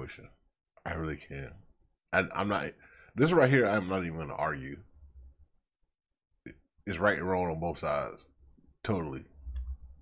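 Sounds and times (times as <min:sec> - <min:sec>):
man talking: 0:00.0 - 0:04.9, 0:06.5 - 0:09.4.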